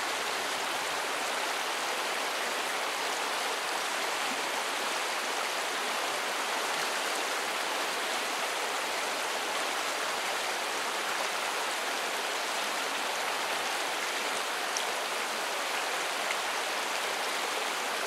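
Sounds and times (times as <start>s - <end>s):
river water rushing over boulders: 0.0s - 18.0s.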